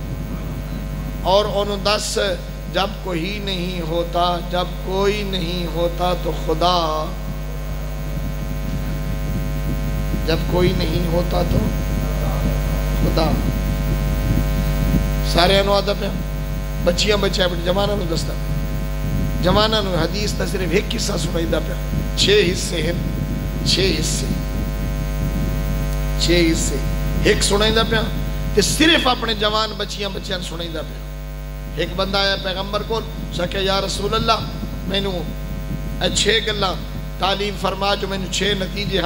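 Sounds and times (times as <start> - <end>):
electrical mains hum: 0.0 - 39.0
man's voice: 1.2 - 7.3, 10.2 - 13.6, 15.2 - 18.4, 19.4 - 24.5, 26.2 - 31.0, 31.7 - 35.4, 36.0 - 39.0.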